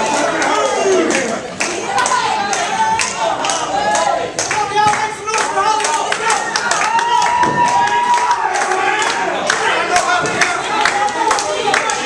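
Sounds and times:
audience clapping: 0.0 - 12.0
audience shouting: 0.0 - 12.0.

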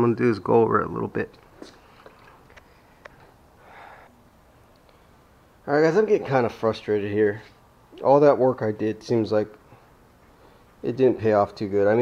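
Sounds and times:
soft breathy rush of noise: 2.6 - 5.5.

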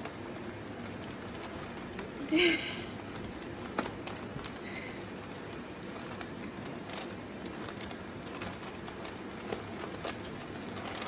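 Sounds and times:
rats nibbling ticks: 0.0 - 2.3, 3.0 - 11.0
rats rustling in bedding: 0.0 - 11.0.

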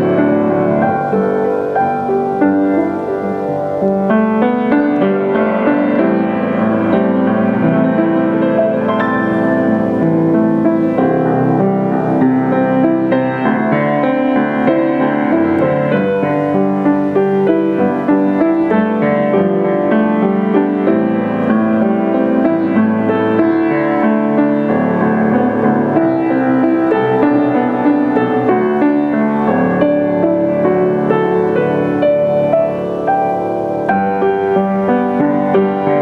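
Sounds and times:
grand piano playing: 0.0 - 36.0.

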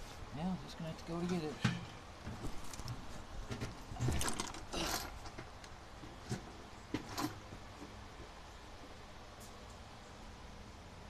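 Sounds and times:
handling clicks knocks and rustles: 1.1 - 8.3.

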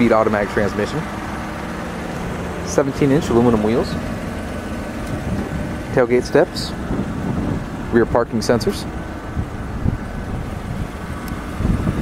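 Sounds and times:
vehicle engine idling: 0.0 - 12.0
wind noise on microphone: 5.0 - 12.0.

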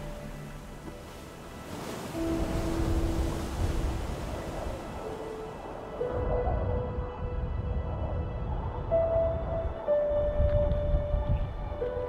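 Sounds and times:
slow held-note soundtrack music: 0.0 - 12.0.

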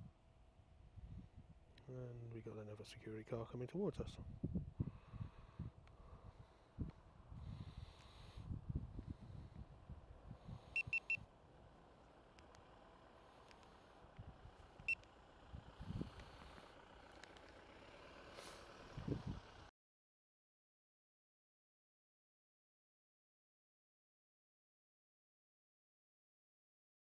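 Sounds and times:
faint low rumble: 0.0 - 19.7
short electronic beeps: 10.8 - 11.2.

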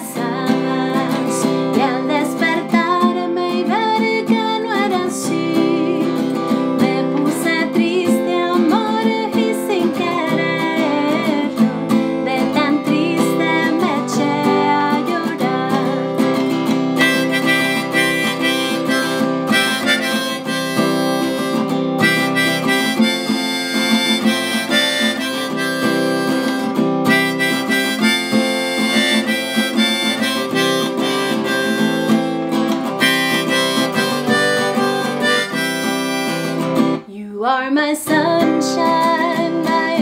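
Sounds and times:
harmonica melody: 0.0 - 37.1
strummed acoustic guitar: 0.0 - 37.1.

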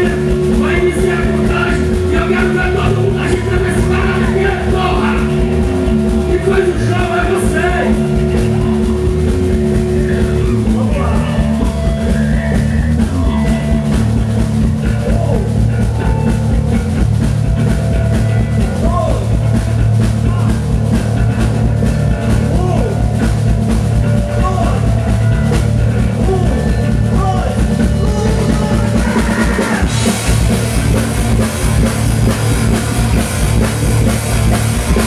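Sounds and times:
rock band playing: 0.0 - 35.0.

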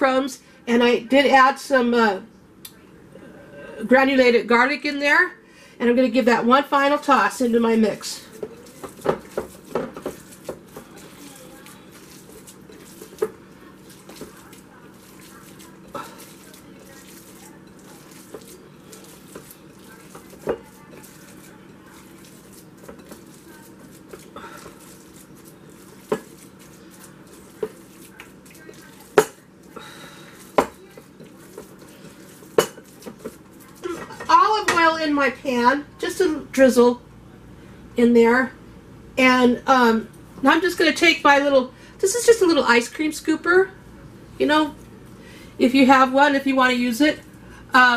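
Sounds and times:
faint steady hum: 0.0 - 47.9
hands mixing raw meat: 7.1 - 34.9.

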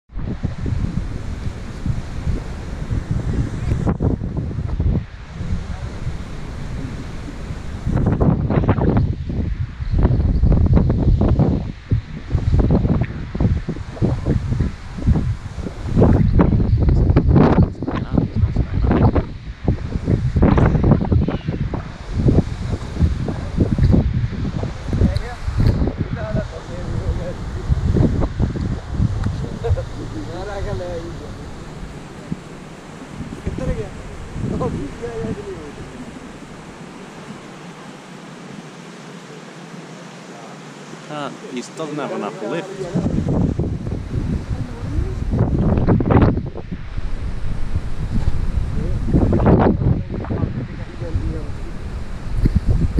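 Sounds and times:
wind buffeting microphone: 0.1 - 39.0, 40.6 - 52.9.

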